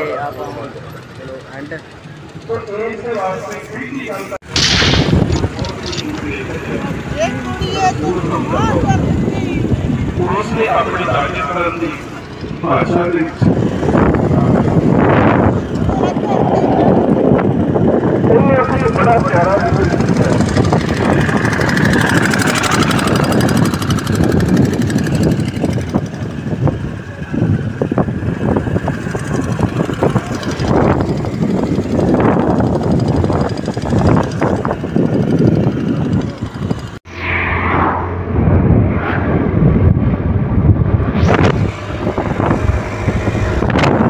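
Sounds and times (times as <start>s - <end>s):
scooter engine running: 0.0s - 3.9s, 5.2s - 37.0s
wind buffeting microphone: 4.4s - 37.0s, 37.6s - 44.0s.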